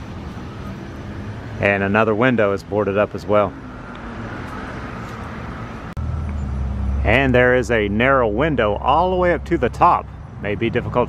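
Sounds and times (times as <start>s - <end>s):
road noise hiss: 0.0s - 11.0s
vehicle engine rumble: 0.0s - 11.0s.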